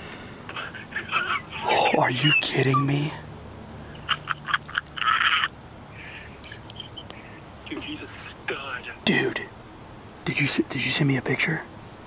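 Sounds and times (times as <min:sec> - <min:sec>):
breathy whispered laughter: 0:00.0 - 0:02.9, 0:03.9 - 0:08.5.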